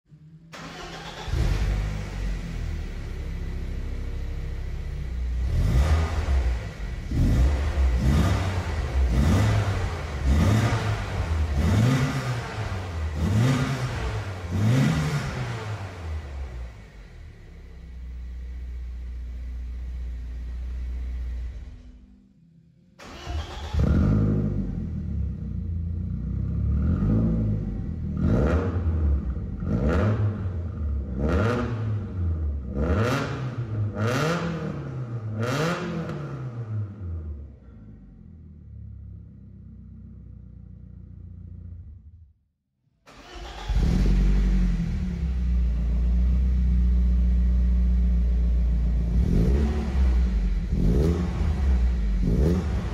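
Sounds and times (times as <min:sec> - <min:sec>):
car engine revving and idling: 0:00.1 - 0:22.0, 0:23.0 - 0:42.2, 0:43.1 - 0:52.9.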